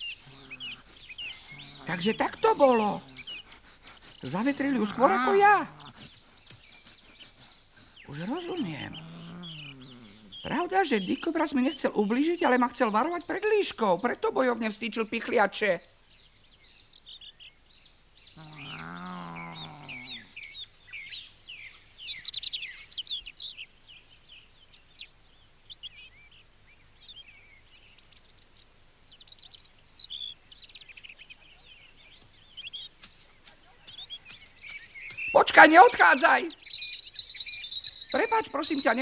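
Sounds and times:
birds chirping: 0:00.0 - 0:39.0.

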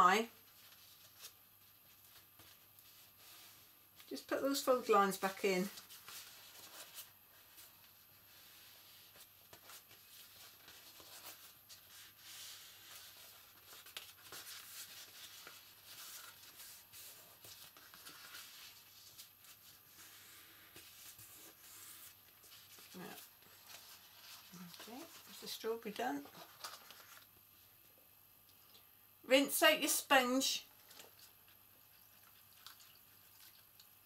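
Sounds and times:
card rustling and rubbing: 0:05.8 - 0:27.4.

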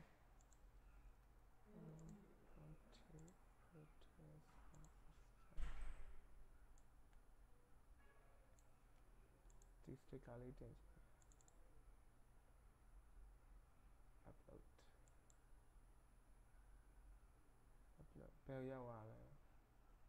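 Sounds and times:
quiet computer mouse clicks: 0:00.4 - 0:00.7, 0:01.8 - 0:02.2, 0:03.0 - 0:03.4, 0:04.6 - 0:05.0, 0:06.7 - 0:07.3, 0:08.5 - 0:09.9, 0:11.1 - 0:11.7, 0:14.8 - 0:15.4.

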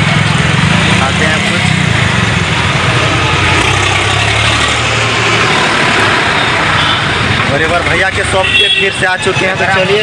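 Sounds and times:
engine running: 0:00.0 - 0:08.2
busy crowd noise: 0:00.0 - 0:10.0.

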